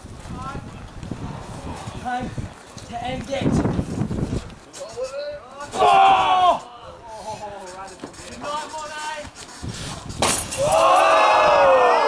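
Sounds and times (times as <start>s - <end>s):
light tube shattering: 10.2s - 11.2s.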